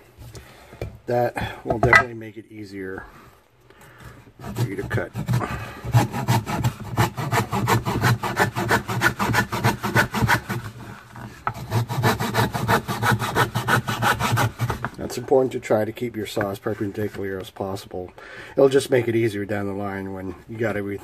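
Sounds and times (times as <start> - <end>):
hand saw rasping through wood: 4.4 - 15.0.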